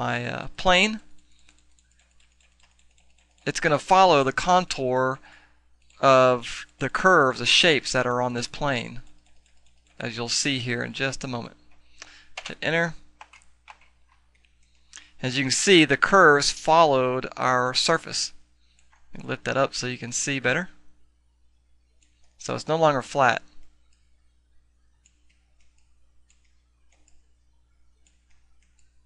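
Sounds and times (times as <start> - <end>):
keyboard and mouse clicks: 1.2 - 3.5, 13.2 - 15.0, 18.7 - 19.1, 25.0 - 27.3, 28.0 - 29.0.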